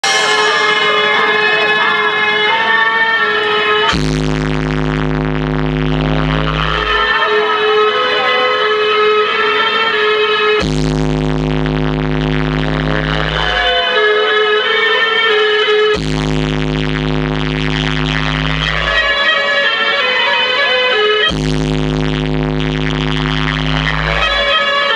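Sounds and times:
fast buzzing pulse: 0.0 - 8.0, 8.7 - 24.9
electronic dance music: 0.0 - 24.9
synthesizer melody: 0.0 - 24.9
deep sustained bass chord: 3.4 - 7.2, 10.6 - 13.7, 15.9 - 19.3, 21.3 - 24.6.

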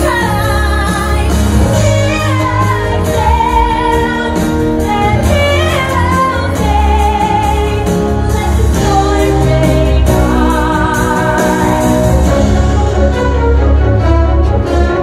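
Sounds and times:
woman singing a ballad: 0.0 - 12.3
musical accompaniment: 0.0 - 15.0.

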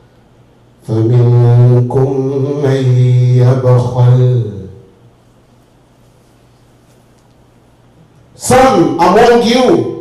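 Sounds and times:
man chanting on low pitch: 0.8 - 4.9.

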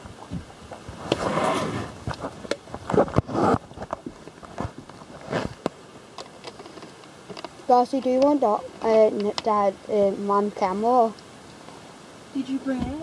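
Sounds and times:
clothing brushing microphone: 0.8 - 3.9, 4.5 - 5.6.

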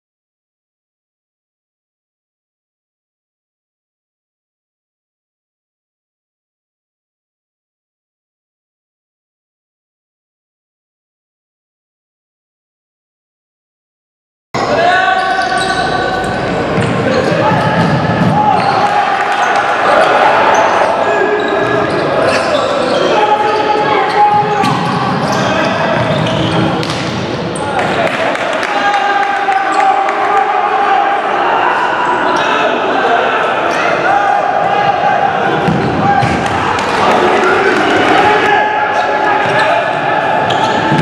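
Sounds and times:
players shouting: 14.6 - 41.0.

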